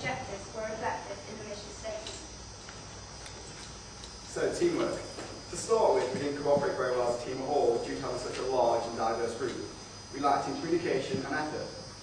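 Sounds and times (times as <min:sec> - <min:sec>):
background hiss: 0:00.0 - 0:12.0
low mains hum: 0:00.0 - 0:12.0.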